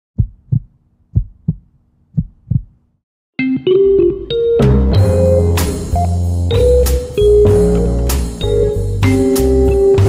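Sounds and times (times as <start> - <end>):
heartbeat thumps: 0.2 - 2.8.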